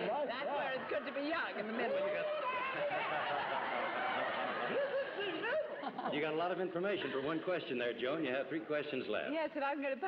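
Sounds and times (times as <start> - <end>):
audience laughing: 0.4 - 6.4.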